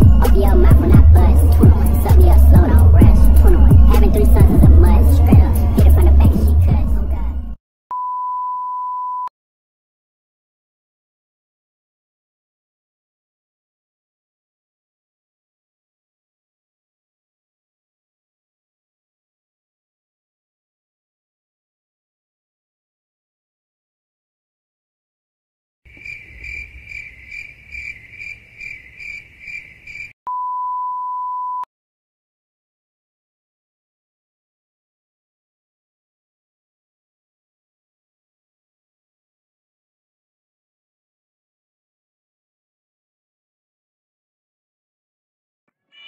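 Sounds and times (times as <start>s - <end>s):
low outdoor rumble: 0.0s - 7.6s
rapping over music: 0.0s - 7.6s
steady electronic beep: 7.9s - 9.3s, 30.3s - 31.7s
cricket chirping: 25.9s - 30.2s.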